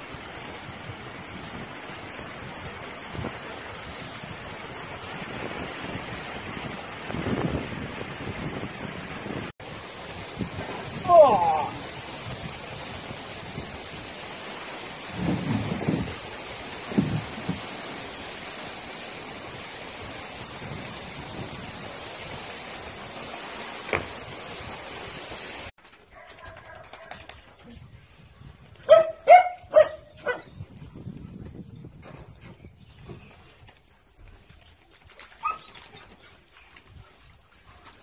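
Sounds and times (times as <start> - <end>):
heavy rain pouring: 0.0 - 25.8
dog barking: 28.9 - 30.5.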